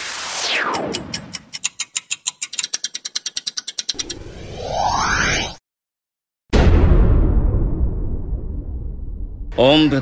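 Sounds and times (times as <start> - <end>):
clock ticking: 0.8 - 4.1
falling whoosh: 4.0 - 5.6.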